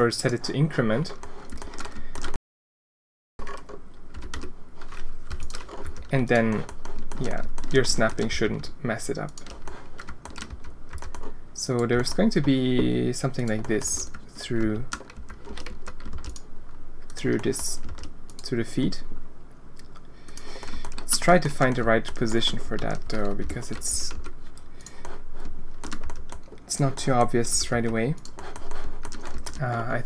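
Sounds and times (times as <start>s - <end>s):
computer keyboard keys clicking: 1.1s - 2.4s, 3.4s - 8.3s, 9.2s - 16.5s, 17.1s - 18.5s, 19.8s - 25.2s, 25.8s - 29.9s.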